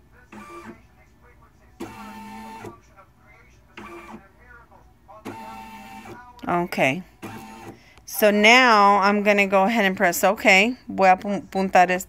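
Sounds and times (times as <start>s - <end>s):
embroidery machine motors moving: 1.8s - 2.8s, 5.2s - 6.2s, 7.2s - 7.8s.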